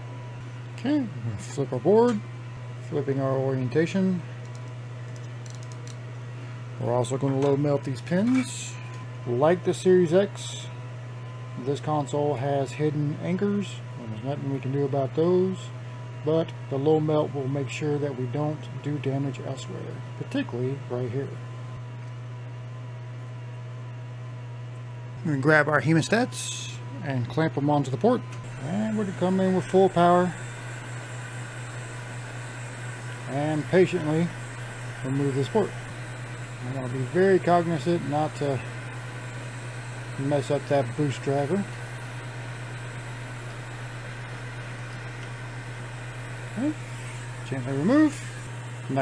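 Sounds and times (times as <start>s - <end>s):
equipment low hum: 0.0s - 49.0s
faint high whine: 27.9s - 49.0s
hot air station hissing: 28.4s - 49.0s.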